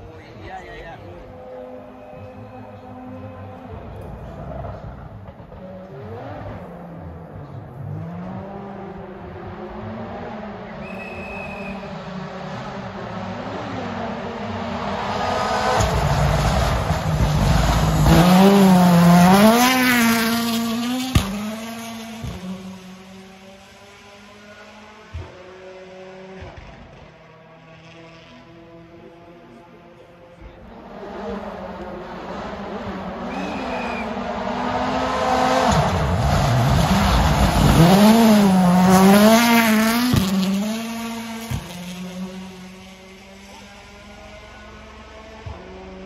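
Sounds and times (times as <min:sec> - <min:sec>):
rally car engine revving: 0:00.0 - 0:46.0.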